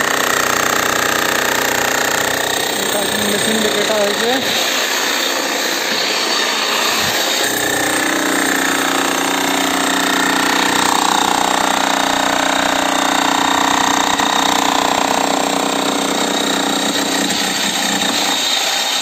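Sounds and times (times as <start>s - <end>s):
demolition hammer hammering: 0.0s - 19.0s.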